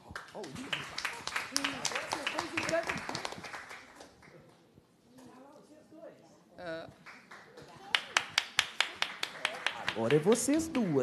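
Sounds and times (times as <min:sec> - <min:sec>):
rhythmic hand clapping: 0:00.0 - 0:04.2, 0:07.0 - 0:11.0.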